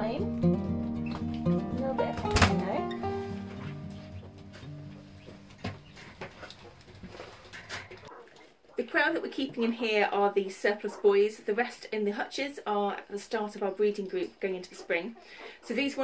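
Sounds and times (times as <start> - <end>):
acoustic guitar music: 0.0 - 6.3.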